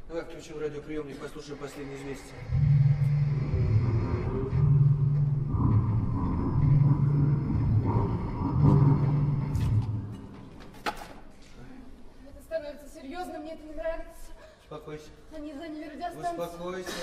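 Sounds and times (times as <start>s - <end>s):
rhinoceros bellowing: 2.4s - 10.3s.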